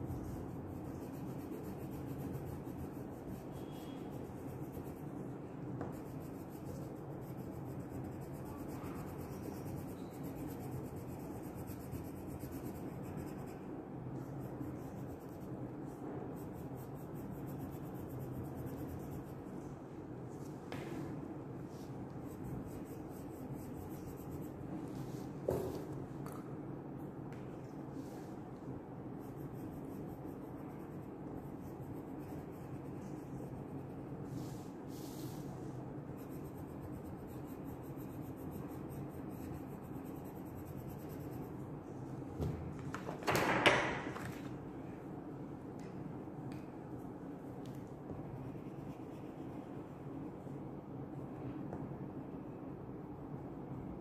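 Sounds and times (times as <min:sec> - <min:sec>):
crayon scribbling on paper: 0:00.0 - 0:19.7, 0:21.8 - 0:24.8, 0:29.1 - 0:34.3, 0:36.0 - 0:41.7.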